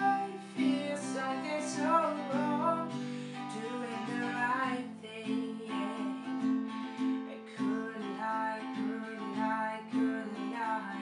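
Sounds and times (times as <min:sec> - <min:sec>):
acoustic guitar strumming: 0:00.0 - 0:11.0
woman singing: 0:00.0 - 0:11.0.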